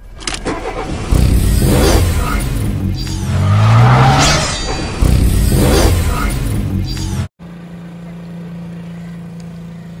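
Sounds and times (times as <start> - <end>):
car engine starting and revving: 0.3 - 7.3.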